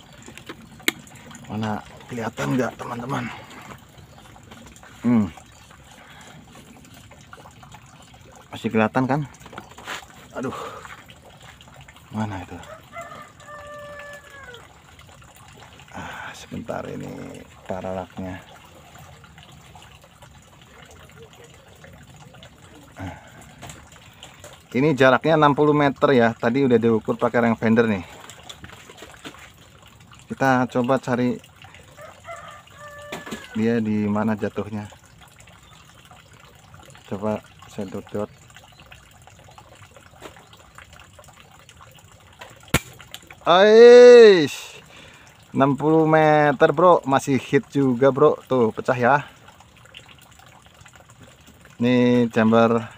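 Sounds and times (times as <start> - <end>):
rooster crowing: 12.6 - 14.7, 31.9 - 33.6.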